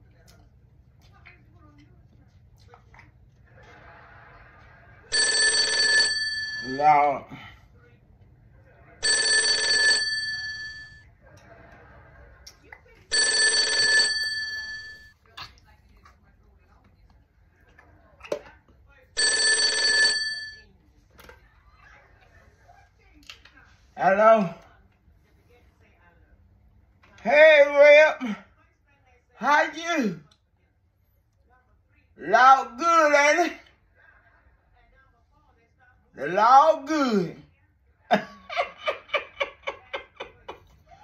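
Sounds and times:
telephone ringing: 5.1 - 7.0, 9.0 - 11.0, 13.1 - 15.1, 19.2 - 20.7.

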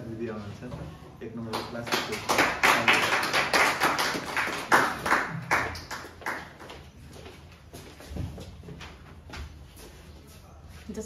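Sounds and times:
people clapping: 1.4 - 7.0.

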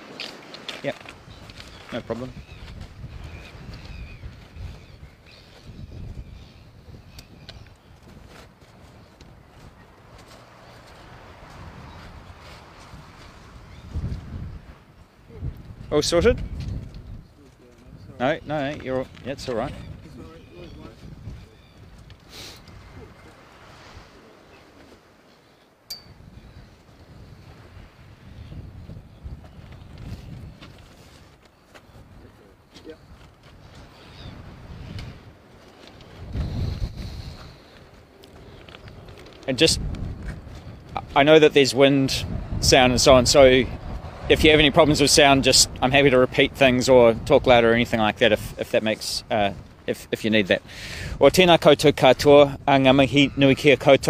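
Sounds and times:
wind buffeting microphones: 0.0 - 25.3, 25.9 - 54.0.

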